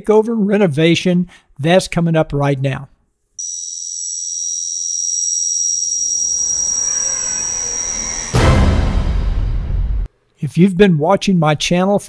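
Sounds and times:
high-pitched ringing tone: 0:03.4 - 0:09.3
low rumble: 0:06.2 - 0:10.1
deep impact hit: 0:08.0 - 0:10.1.

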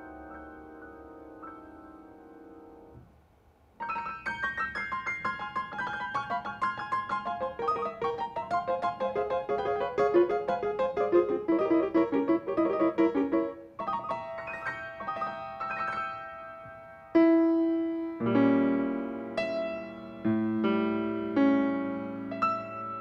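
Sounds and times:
grand piano playing: 0:00.0 - 0:03.0, 0:03.8 - 0:23.0.

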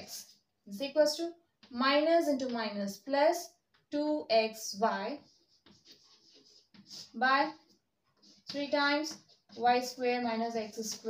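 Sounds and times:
chalk scratching on blackboard: 0:04.7 - 0:11.0.

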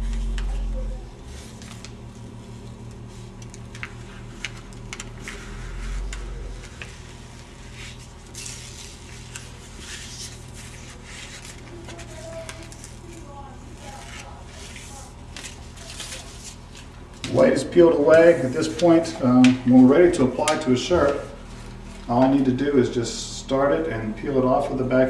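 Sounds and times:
paper film peeling crackle: 0:01.3 - 0:17.4.

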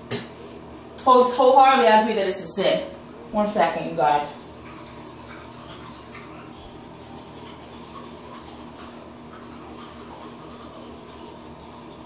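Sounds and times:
steady hum with hiss: 0:00.0 - 0:12.0.

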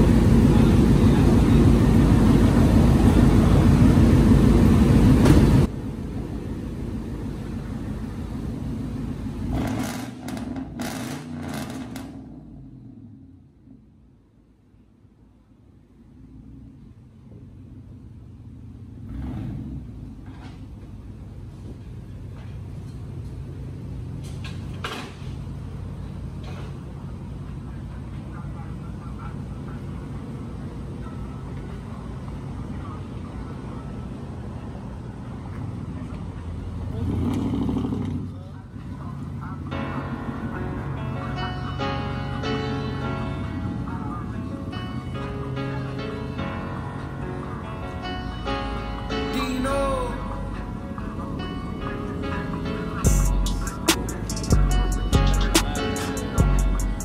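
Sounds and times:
truck engine exhaust rumble: 0:00.0 - 0:47.9, 0:50.2 - 0:57.0
music: 0:40.3 - 0:57.0.

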